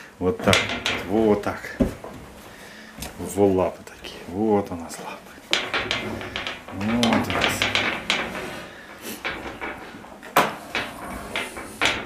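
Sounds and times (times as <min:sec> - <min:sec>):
wire-mesh cage rattling: 0:00.4 - 0:12.0.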